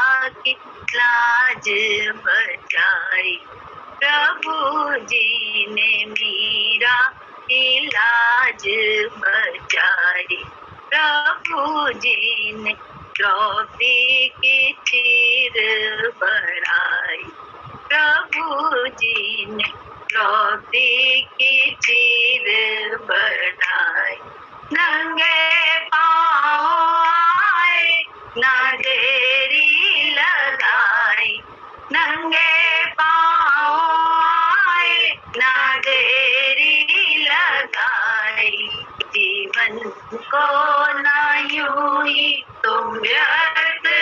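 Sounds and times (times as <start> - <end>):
woman singing devotional song: 0.0 - 44.0.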